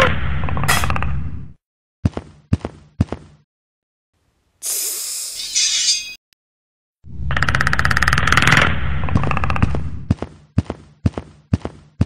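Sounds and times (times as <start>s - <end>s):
hiss: 4.6s - 5.4s.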